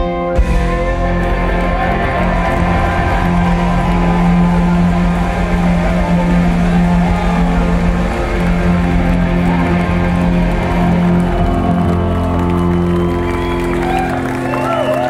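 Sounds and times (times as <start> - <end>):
ringing electric guitar notes: 0.0 - 15.0
rock band playing live: 0.0 - 15.0.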